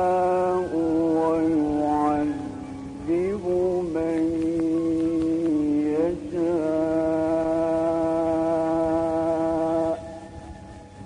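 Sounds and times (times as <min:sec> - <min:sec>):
man reciting in long held note: 0:00.0 - 0:11.0.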